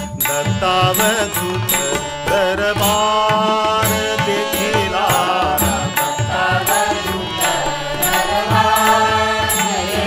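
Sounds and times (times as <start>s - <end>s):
hand drums: 0.0s - 10.0s
harmonium melody: 0.0s - 10.0s.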